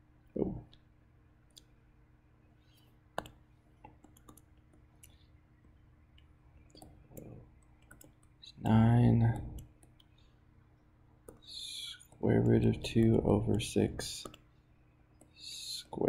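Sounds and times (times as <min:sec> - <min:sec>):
stylus tapping on tablet screen: 0:03.2 - 0:04.9.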